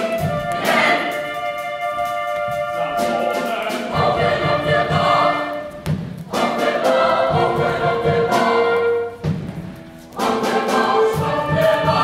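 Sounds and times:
choir singing with instruments: 0.0s - 12.0s.

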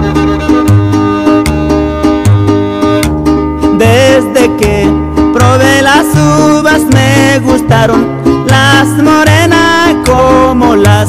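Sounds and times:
wavering fiddle melody: 0.0s - 5.4s
plucked strings and bass: 0.0s - 11.0s.

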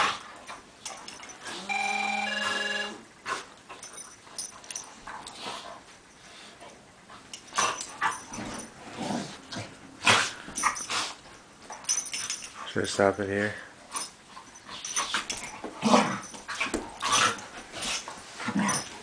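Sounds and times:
short electronic tune: 1.7s - 3.0s
dogs growling: 7.5s - 11.2s, 15.2s - 19.0s.

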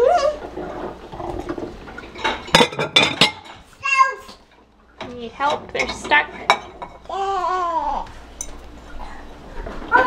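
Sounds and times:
dishes clinking: 0.7s - 3.7s, 5.0s - 7.3s, 8.4s - 9.0s.

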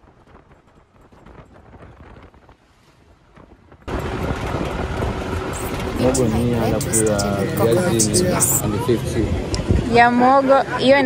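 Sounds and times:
road and wind noise in car: 3.3s - 11.0s
loud dense outdoor noise: 3.9s - 11.0s.

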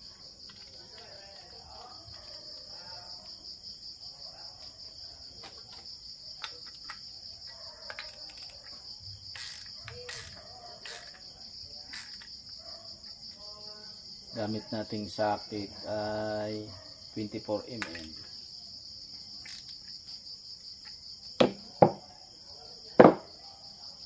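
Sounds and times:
crickets chirring: 0.0s - 24.0s.

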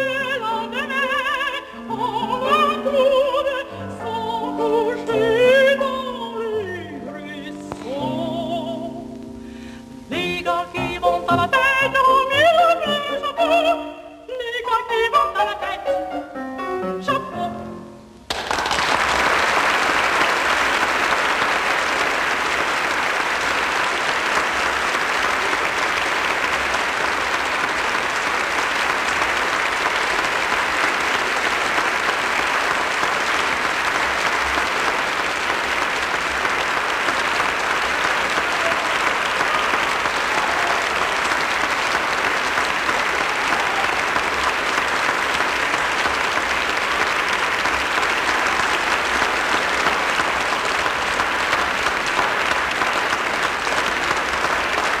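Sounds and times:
audience applauding: 18.3s - 55.0s.

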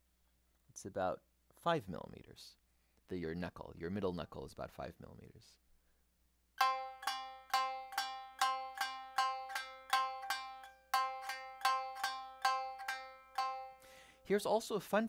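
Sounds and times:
shamisen string struck: 6.6s - 14.1s.

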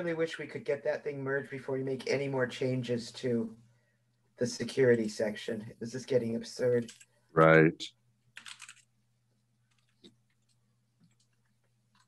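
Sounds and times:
computer keyboard typing: 6.8s - 7.1s, 8.4s - 8.9s, 9.7s - 12.0s.

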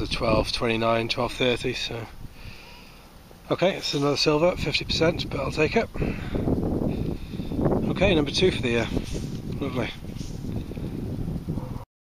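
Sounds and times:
wind buffeting microphone: 0.0s - 2.6s, 4.1s - 11.8s.

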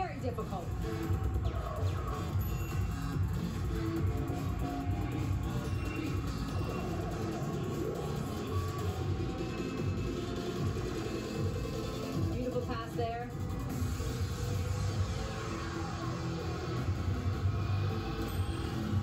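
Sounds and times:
cheer music with steady beat: 0.1s - 17.9s.

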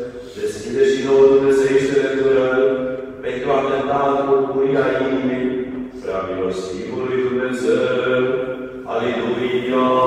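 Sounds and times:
man chanting a hymn: 0.0s - 10.0s.

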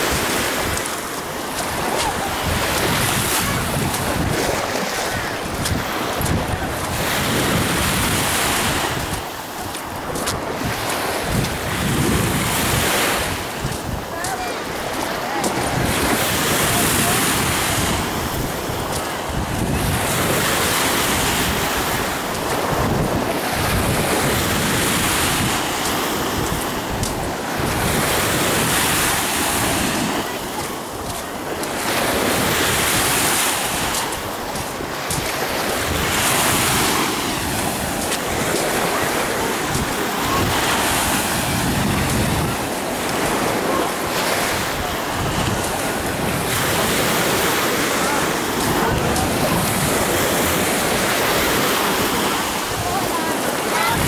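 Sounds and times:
small waves washing onto sand: 0.0s - 54.0s
wind buffeting microphone: 0.0s - 54.0s.

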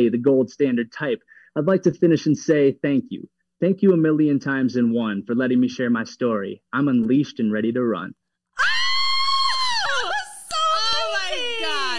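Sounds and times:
woman screaming with excitement: 8.6s - 11.9s.

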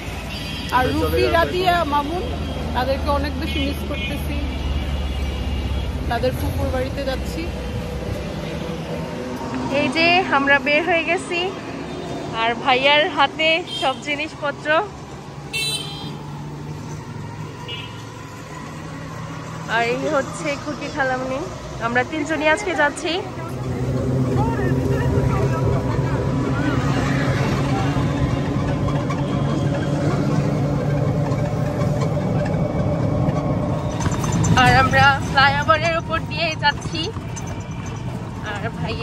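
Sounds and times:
auto-rickshaw engine hum: 0.0s - 39.0s
vehicle horn toots: 15.5s - 16.2s.

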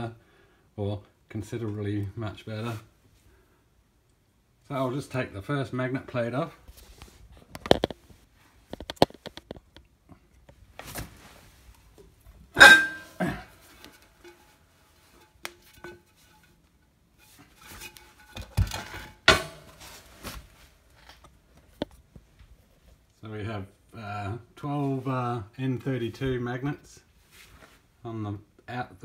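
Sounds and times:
metallic knocks and clatter: 12.5s - 16.6s, 17.2s - 19.7s.

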